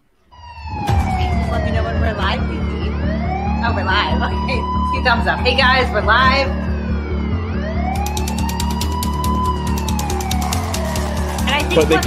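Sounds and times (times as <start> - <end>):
siren wailing: 0.2 - 12.0
music with steady beat: 0.8 - 12.0
rapid ticking percussion: 8.0 - 12.0.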